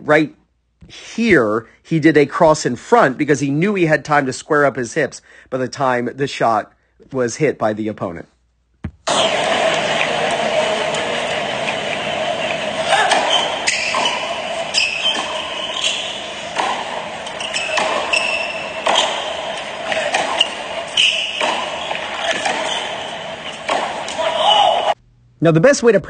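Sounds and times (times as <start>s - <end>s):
tennis ball bouncing on hard court: 8.8s - 24.9s
tennis ball struck by rackets: 8.8s - 24.9s
crowd murmur: 9.1s - 25.0s.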